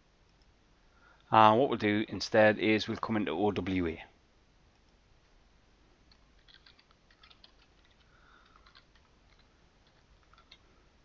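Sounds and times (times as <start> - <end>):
faint computer keyboard typing: 6.0 - 10.8.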